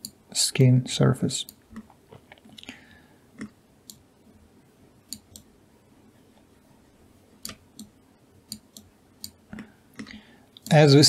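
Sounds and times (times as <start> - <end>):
computer mouse clicks: 5.1 - 5.5, 7.4 - 10.8.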